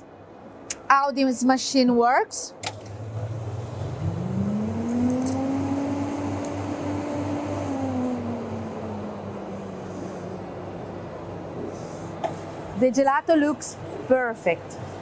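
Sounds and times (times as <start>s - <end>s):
steady low hum: 2.5s - 15.0s
soft-serve machine motor: 2.7s - 12.9s.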